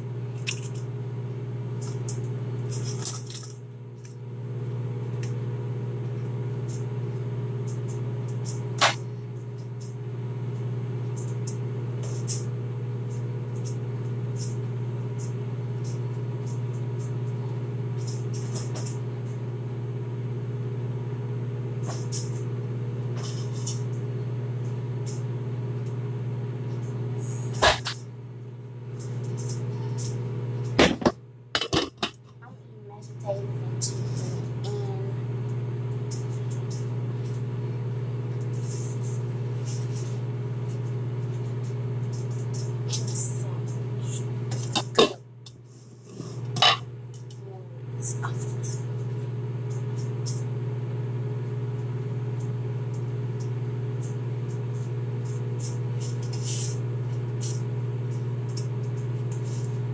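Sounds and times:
kitchen appliance humming: 0:00.0 - 0:59.9.

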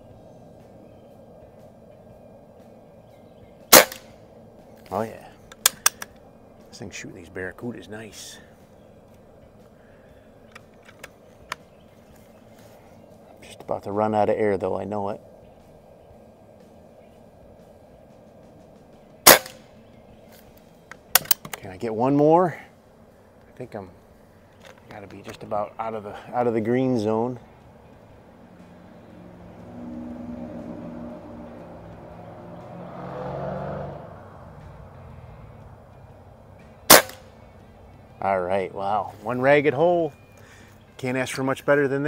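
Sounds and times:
air rifle shot crack: 0:03.7 - 0:04.2, 0:19.2 - 0:19.7, 0:36.9 - 0:37.3.

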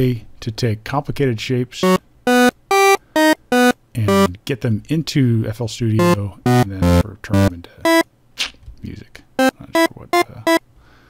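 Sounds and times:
buzzy synth notes: 0:01.8 - 0:04.3, 0:06.0 - 0:08.0.

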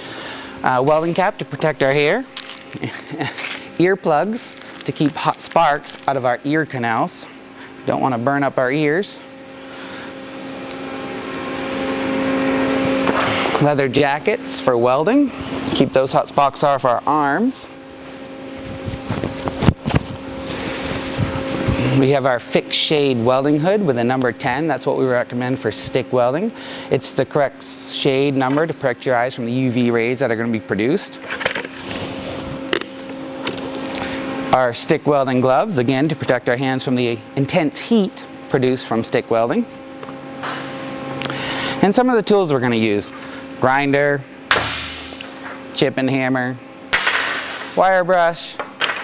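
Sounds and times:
low mechanical hum: 0:00.0 - 0:49.0.

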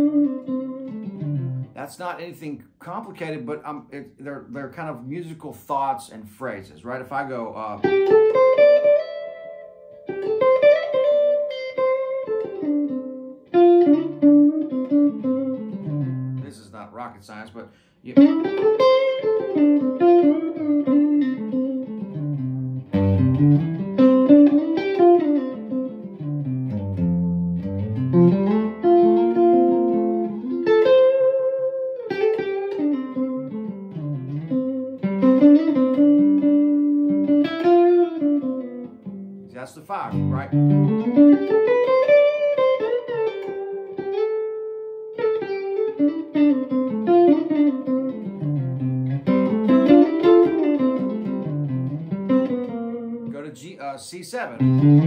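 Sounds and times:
electric guitar melodic phrases: 0:00.0 - 0:55.0.

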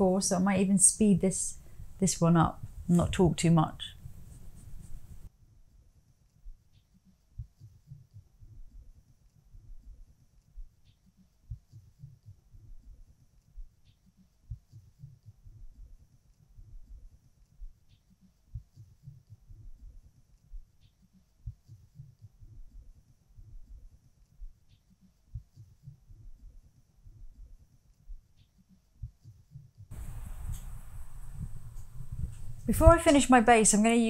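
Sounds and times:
faint low thumps: 0:29.9 - 0:33.5.

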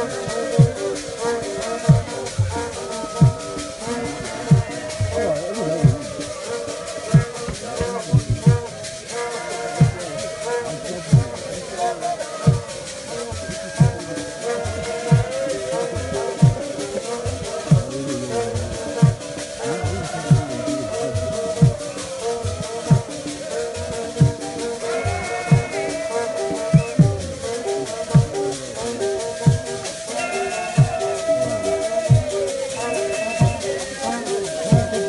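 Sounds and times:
deep drum strikes: 0:00.0 - 0:06.4, 0:07.1 - 0:09.0, 0:11.0 - 0:11.6, 0:14.7 - 0:15.4, 0:25.4 - 0:25.8
deep drum beats: 0:00.0 - 0:35.0
group of voices singing: 0:00.0 - 0:35.0
held pitched notes: 0:00.0 - 0:35.0
shaken rattle: 0:00.0 - 0:35.0.

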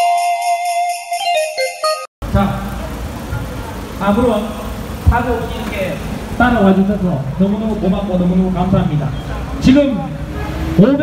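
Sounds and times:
jingle: 0:00.0 - 0:02.1
man speaking over a loudspeaker: 0:02.2 - 0:03.0, 0:04.0 - 0:11.0
engines and traffic rumble: 0:02.2 - 0:11.0.

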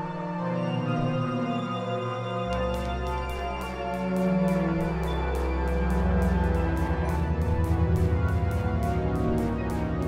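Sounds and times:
synthesizer drone music: 0:02.4 - 0:10.0.

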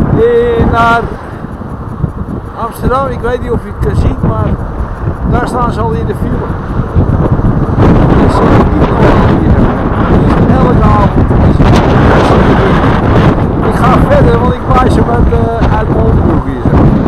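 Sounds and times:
motorway traffic rushing: 0:00.0 - 0:17.0
wind buffeting microphone: 0:00.0 - 0:17.0.

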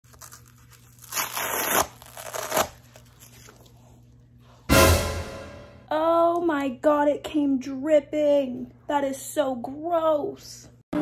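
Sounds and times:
velcro tearing open: 0:00.0 - 0:03.7.

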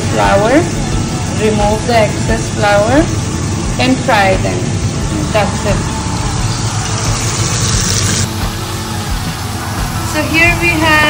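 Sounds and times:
food deep-frying in oil: 0:00.1 - 0:11.0.

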